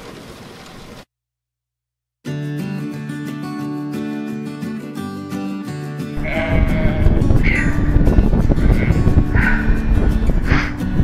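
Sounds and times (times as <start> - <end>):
acoustic guitar music: 2.3 - 11.0
sheep bleating: 6.2 - 9.8
low rumbling noise: 6.2 - 11.0.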